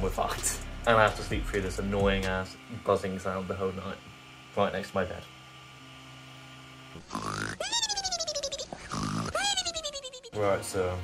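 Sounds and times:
stepper motors whining: 0:00.0 - 0:11.0.

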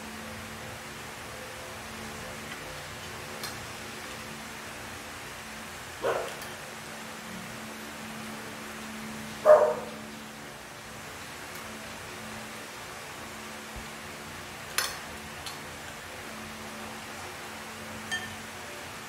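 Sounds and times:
dog barking: 0:06.0 - 0:06.4, 0:09.4 - 0:10.0.

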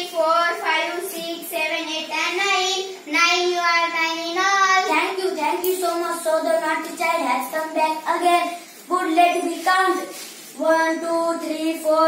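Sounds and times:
child singing: 0:00.0 - 0:12.0.

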